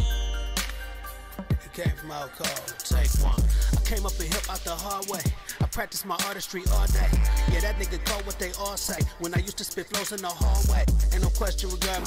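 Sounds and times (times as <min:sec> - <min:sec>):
rapping over a beat: 0:01.4 - 0:12.0
deep bass line: 0:02.9 - 0:04.8, 0:06.7 - 0:09.6, 0:10.4 - 0:12.0.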